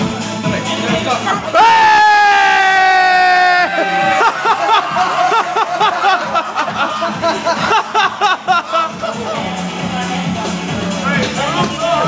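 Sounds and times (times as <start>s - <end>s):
person whooping: 1.6s - 6.2s.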